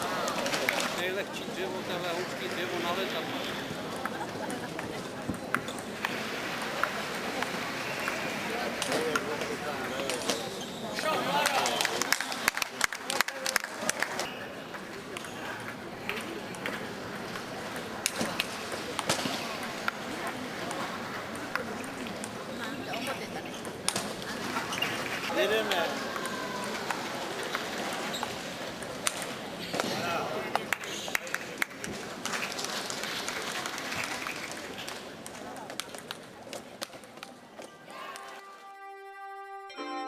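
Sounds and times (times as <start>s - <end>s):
murmur of spectators talking: 0.0s - 40.0s.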